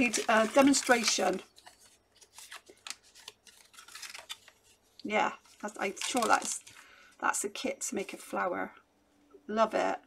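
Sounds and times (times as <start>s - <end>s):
paper bag rustling and crinkling: 0.0s - 7.0s.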